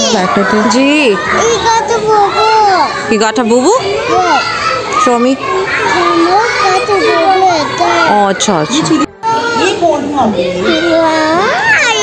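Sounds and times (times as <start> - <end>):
small girl talking: 11.4 - 12.0.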